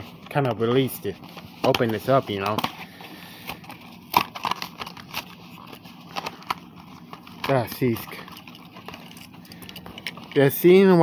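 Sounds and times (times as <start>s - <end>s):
plastic packaging crackling: 0.3s - 11.0s.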